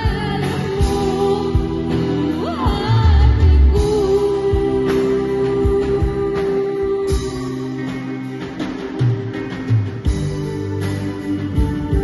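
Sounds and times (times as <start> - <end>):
girl singing into microphone: 0.0 - 8.1
live rock band playing: 0.0 - 12.0.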